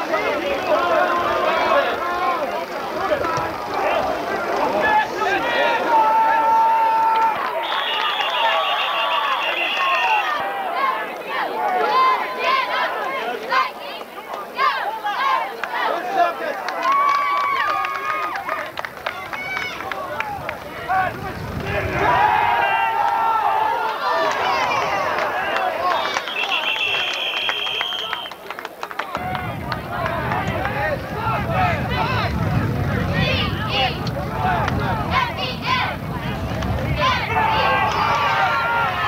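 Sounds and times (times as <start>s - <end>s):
crowd shouting and cheering: 0.0s - 39.0s.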